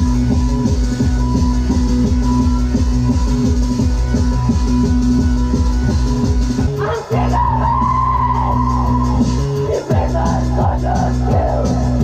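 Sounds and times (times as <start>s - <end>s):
synthesizer drone with pulsing beat: 0.0s - 12.0s.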